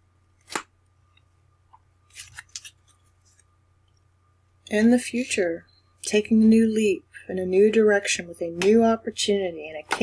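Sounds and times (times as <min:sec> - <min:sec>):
card flicks: 0:00.4 - 0:00.7
cards being shuffled: 0:00.4 - 0:00.7, 0:02.1 - 0:03.5.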